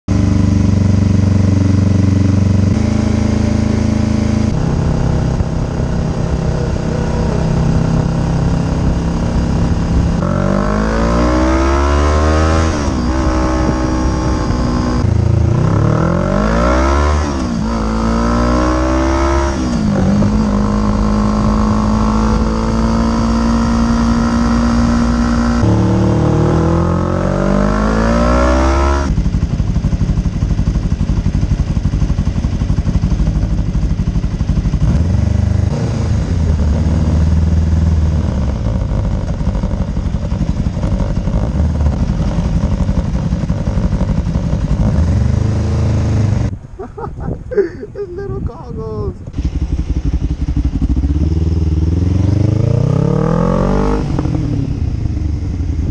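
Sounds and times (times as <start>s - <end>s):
motorcycle engine revving: 0.1s - 46.6s, 49.2s - 55.9s
wind and road noise: 0.1s - 55.9s.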